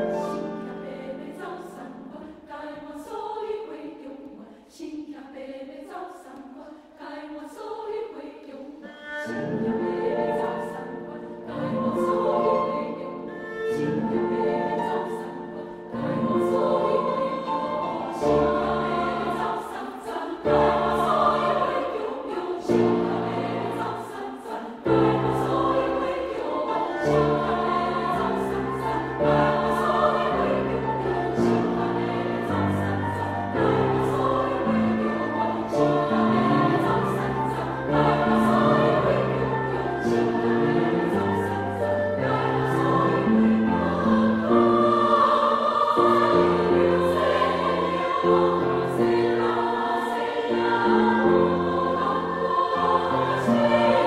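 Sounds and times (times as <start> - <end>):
piano accompaniment: 0.0 - 2.2, 9.0 - 54.0
women's choir singing: 0.0 - 54.0.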